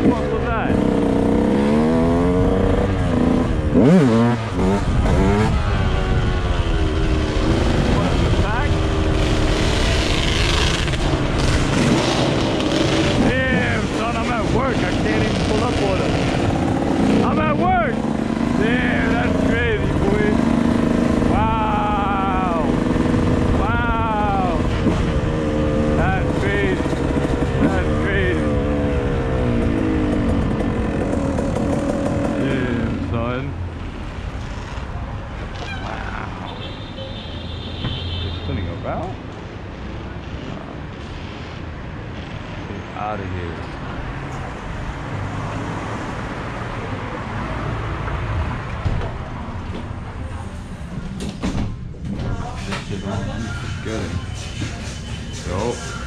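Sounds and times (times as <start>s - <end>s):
dirt bike engine revving: 0.0s - 33.4s.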